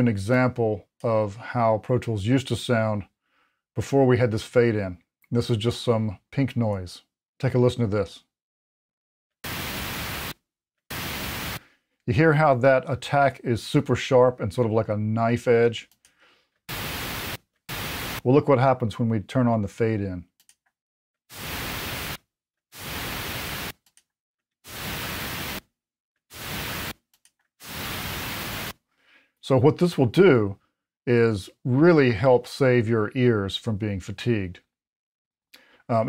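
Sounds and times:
pink noise bursts: 0:09.4 - 0:11.6, 0:16.7 - 0:18.2, 0:21.3 - 0:22.2, 0:22.8 - 0:23.7, 0:24.7 - 0:25.6, 0:26.3 - 0:27.0, 0:27.6 - 0:28.7.

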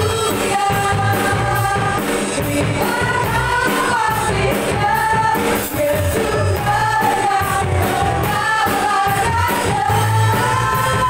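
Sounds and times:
bass guitar: 0:00.0 - 0:11.0
drums: 0:00.0 - 0:11.0
group singing worship song: 0:00.0 - 0:11.0.

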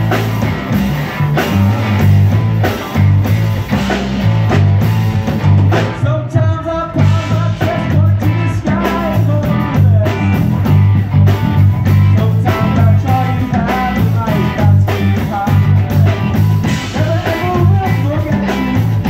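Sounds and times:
rock band playing: 0:00.0 - 0:19.0
person singing: 0:05.8 - 0:10.6, 0:12.0 - 0:19.0.

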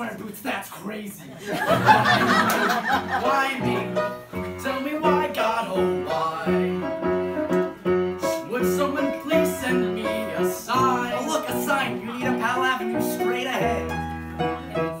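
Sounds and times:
piano playing chords: 0:01.7 - 0:15.0
men singing: 0:02.6 - 0:07.1, 0:08.2 - 0:13.9.

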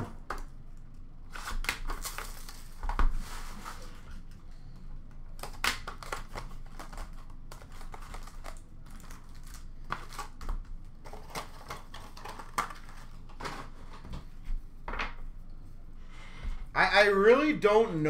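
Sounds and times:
cardboard and wrappers rustling: 0:01.3 - 0:04.3, 0:05.9 - 0:14.6.

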